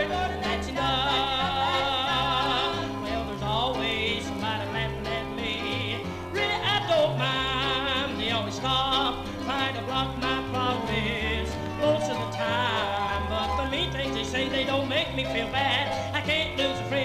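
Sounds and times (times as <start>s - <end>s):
band with walking bass line: 0.0s - 17.0s
man singing with vibrato: 0.0s - 17.0s.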